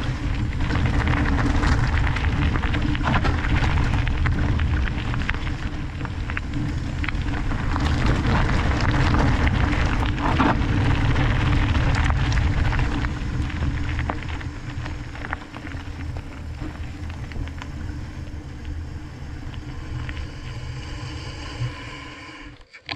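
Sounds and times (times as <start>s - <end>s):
stones clicking: 0.0s - 18.8s
bike tyres rolling on gravel: 0.0s - 22.3s
bike rolling on paved path: 0.0s - 22.6s.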